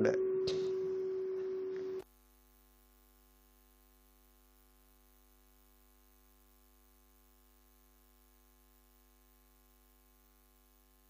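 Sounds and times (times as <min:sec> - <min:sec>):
faint mains hum: 0:00.0 - 0:11.0
steady electrical hum tone: 0:00.0 - 0:11.0.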